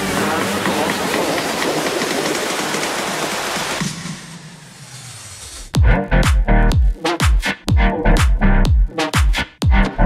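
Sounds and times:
rushing water: 0.0s - 3.8s.

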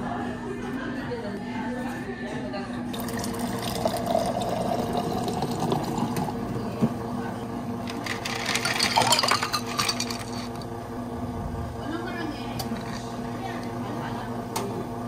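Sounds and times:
machine hum: 2.8s - 15.0s
water pouring into a glass: 3.0s - 6.4s
ice cubes clattering in glass: 8.0s - 10.5s.

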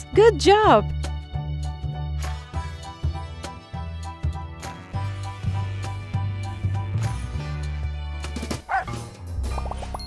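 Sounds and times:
light background music: 0.0s - 10.0s.

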